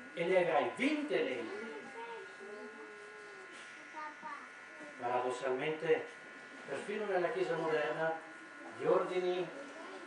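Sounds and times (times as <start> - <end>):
electrical buzz: 0.0 - 10.0.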